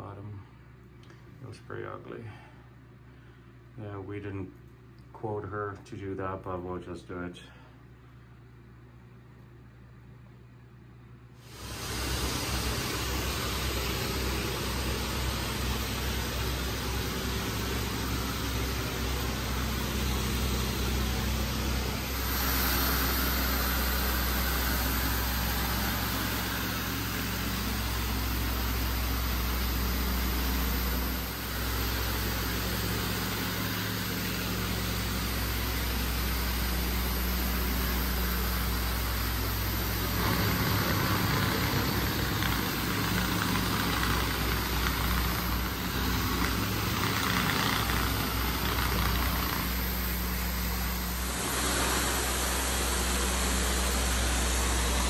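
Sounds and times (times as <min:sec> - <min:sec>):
floor cleaning machine droning: 0:11.4 - 0:55.0.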